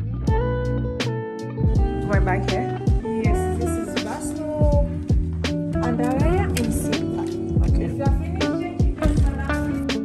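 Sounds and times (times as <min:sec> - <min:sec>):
pop music: 0:00.2 - 0:10.0
deep kick drum: 0:00.3 - 0:00.6, 0:01.6 - 0:03.5, 0:04.6 - 0:05.5, 0:06.2 - 0:06.6, 0:07.6 - 0:09.5.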